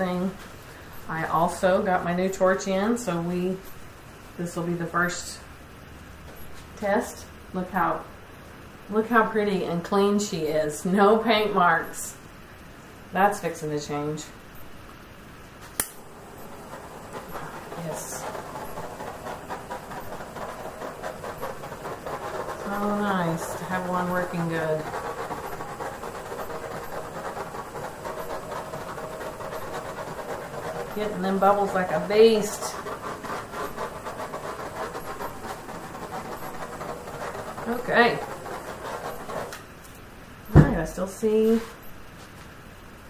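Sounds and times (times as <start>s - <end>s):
torch igniter click: 15.8s - 16.0s
torch flame hissing: 15.8s - 39.8s.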